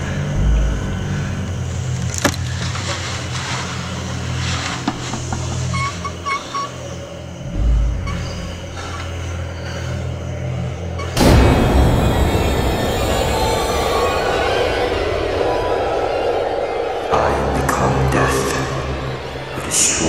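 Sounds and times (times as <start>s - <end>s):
low rumbling drone: 0.0s - 20.0s.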